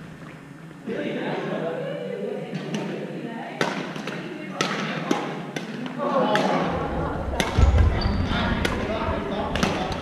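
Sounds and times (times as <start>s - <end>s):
voices in background: 0.7s - 10.0s
racket hitting shuttlecock: 3.6s - 6.7s, 7.4s - 7.8s, 8.6s - 8.9s, 9.5s - 10.0s.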